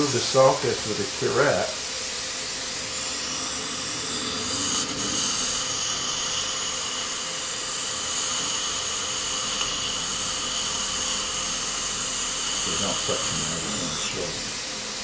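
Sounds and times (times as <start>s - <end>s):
dental equipment hiss and whine: 0.0s - 15.0s.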